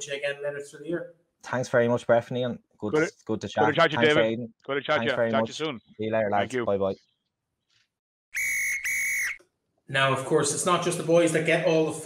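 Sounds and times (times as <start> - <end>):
referee's whistle blasts: 8.3 - 9.4.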